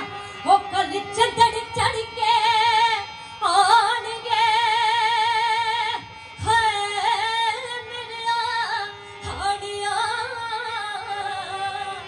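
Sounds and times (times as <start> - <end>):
harmonium drone: 0.0 - 12.0
woman singing folk song: 0.0 - 12.0.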